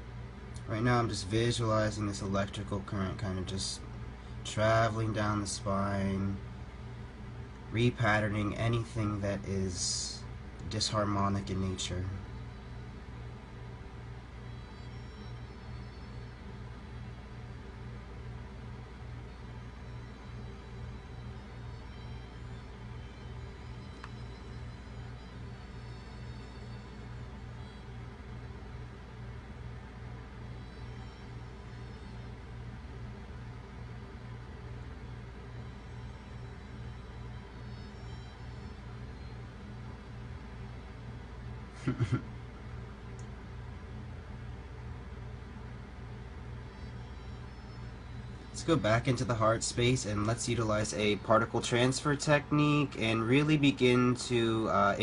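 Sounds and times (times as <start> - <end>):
faint high tones: 0.0 - 41.7, 42.6 - 55.0.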